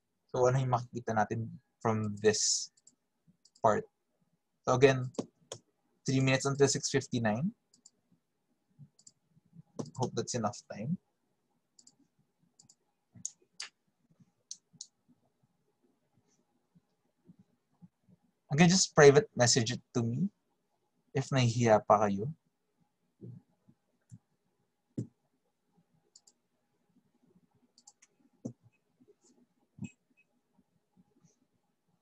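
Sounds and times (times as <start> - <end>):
computer mouse and key clicks: 2.0 - 3.7, 5.0 - 5.7, 7.7 - 8.0, 8.8 - 9.2, 9.8 - 10.2, 11.8 - 13.8, 14.5 - 15.0, 26.0 - 26.4, 27.7 - 30.4.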